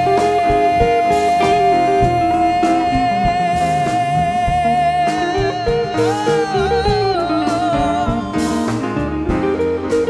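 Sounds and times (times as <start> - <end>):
man singing a long high note: 0.0 - 8.4
grand piano: 0.0 - 10.0
low bass line: 0.0 - 10.0.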